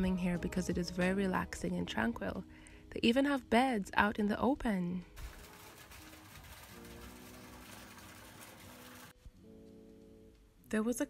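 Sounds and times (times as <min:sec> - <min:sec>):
quiet background music: 0:00.0 - 0:11.0
water spout splashing into pond: 0:05.2 - 0:09.2.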